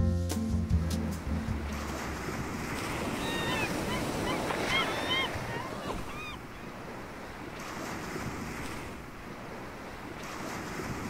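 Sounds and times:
background music: 0.0 - 2.2
wind: 0.3 - 11.0
waves: 0.9 - 11.0
falling bird cries: 3.1 - 6.5.

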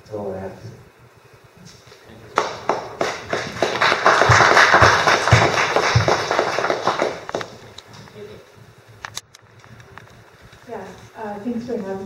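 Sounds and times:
audience applauding: 2.4 - 7.7.

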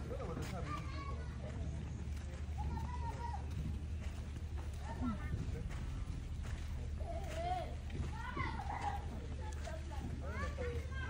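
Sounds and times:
faint distant talking: 0.0 - 11.0
footsteps on dirt path: 0.0 - 11.0
steady low rumble: 1.2 - 11.0.

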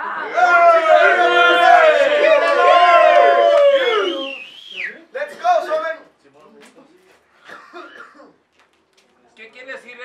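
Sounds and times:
person coughing: 7.4 - 8.4.

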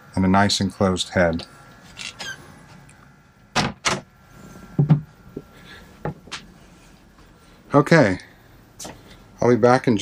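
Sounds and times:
cabin door thumping shut: 3.6 - 4.1.

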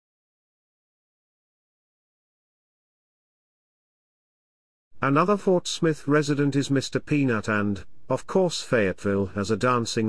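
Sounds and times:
narrator speaking: 5.0 - 10.0.

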